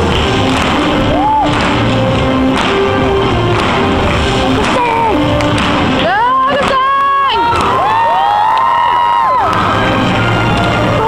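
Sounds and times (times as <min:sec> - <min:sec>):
music: 0:00.0 - 0:11.0
audience cheering: 0:00.9 - 0:01.9, 0:06.1 - 0:11.0
high-pitched whoops and screams: 0:01.1 - 0:01.5, 0:07.3 - 0:11.0.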